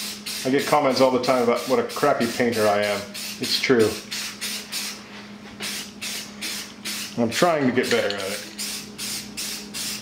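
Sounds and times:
aerosol spray can hissing in bursts: 0.0s - 5.0s, 5.6s - 7.2s, 8.6s - 10.0s.

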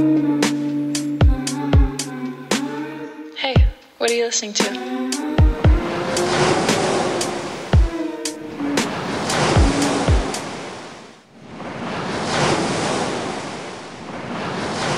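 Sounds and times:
electronic pop song: 0.0s - 10.4s
ocean waves: 0.0s - 14.9s.

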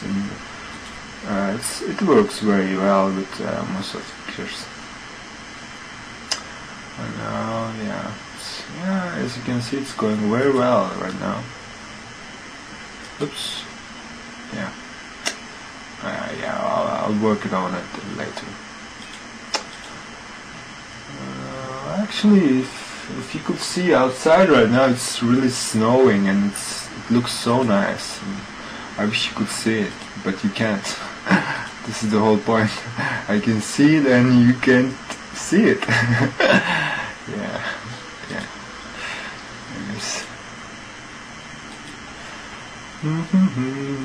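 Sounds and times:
faint steady hiss: 0.0s - 44.0s
man saying uhh: 21.1s - 23.3s, 43.0s - 44.0s
man chuckling and breathing: 31.0s - 31.8s, 35.9s - 38.4s.

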